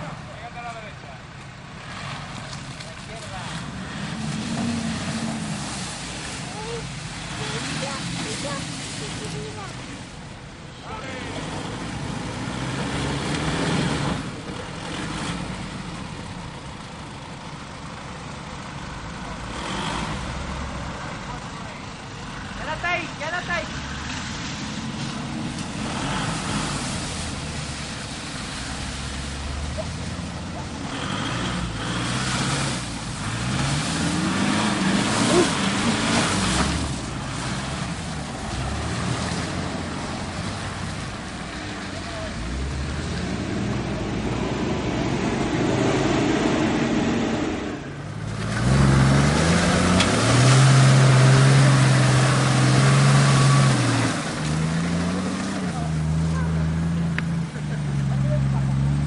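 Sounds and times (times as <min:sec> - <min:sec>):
off-road engines revving: 0:00.0 - 0:59.0.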